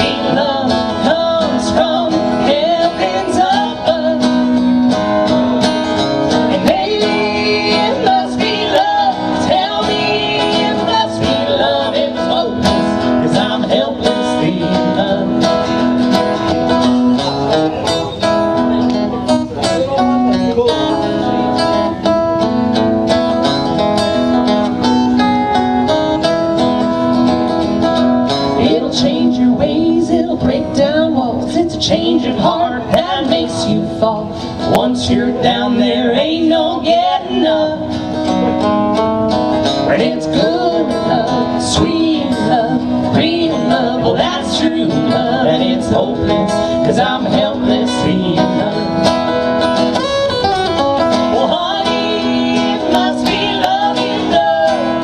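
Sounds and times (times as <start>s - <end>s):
man and woman singing: 0.0s - 16.5s, 28.5s - 38.4s, 39.6s - 49.5s, 51.1s - 55.0s
acoustic guitar strumming: 0.0s - 55.0s.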